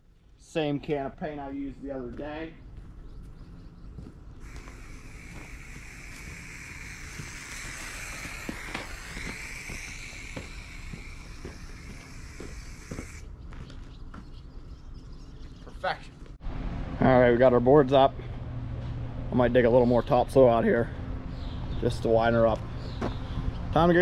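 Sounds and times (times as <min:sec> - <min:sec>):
light footsteps: 0:02.0 - 0:06.4
spray paint can hissing: 0:04.4 - 0:13.3.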